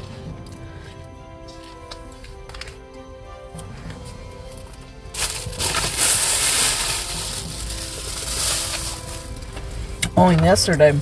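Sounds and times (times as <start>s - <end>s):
faint music: 0.0s - 11.0s
food packaging crinkling: 5.2s - 9.6s.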